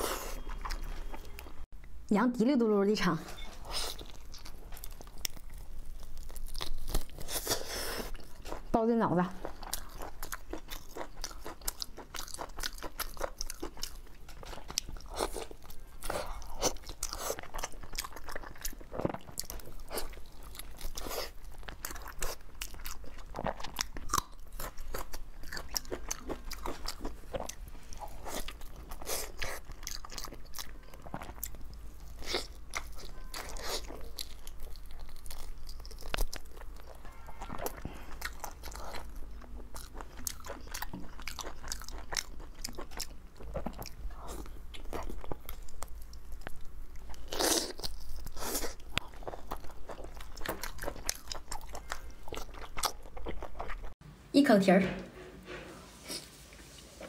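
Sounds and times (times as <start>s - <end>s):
person chewing wetly: 0.0s - 1.6s, 3.7s - 8.7s, 9.4s - 54.0s.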